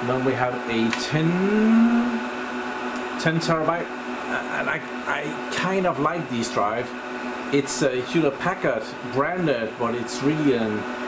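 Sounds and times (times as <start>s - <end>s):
server hum: 0.0s - 11.0s
man saying uhh: 1.1s - 2.3s.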